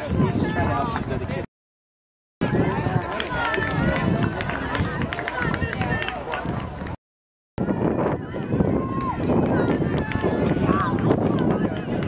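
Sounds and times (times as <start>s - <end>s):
spectators shouting and cheering: 2.4s - 7.0s, 7.6s - 12.0s
runners' footfalls on track: 2.5s - 7.0s.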